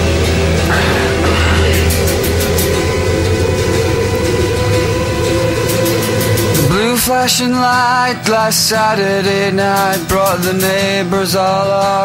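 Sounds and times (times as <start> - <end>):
rock band playing: 0.0 - 10.8
wailing note: 0.7 - 7.2.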